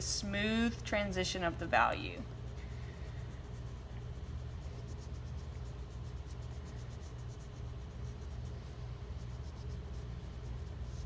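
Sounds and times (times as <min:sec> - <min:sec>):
steady low hum: 0:00.0 - 0:11.0
pencil scratching on paper: 0:02.3 - 0:11.0.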